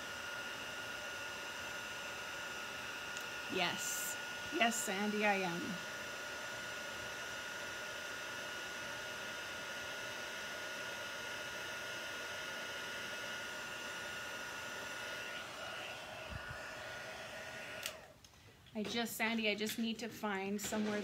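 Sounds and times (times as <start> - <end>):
heat tool fan rush with whine: 0.0 - 18.2.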